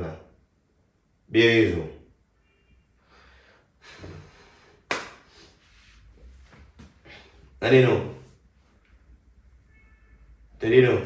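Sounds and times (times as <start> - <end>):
faint breath: 3.0 - 6.0.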